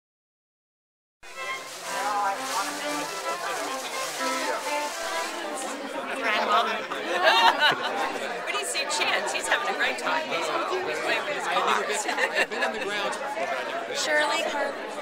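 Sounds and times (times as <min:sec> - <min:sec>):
group of people chattering: 0:01.3 - 0:15.0.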